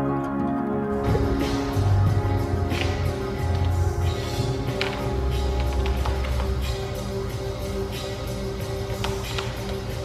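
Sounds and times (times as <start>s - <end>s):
song with held notes and soft beat: 0.0s - 10.0s.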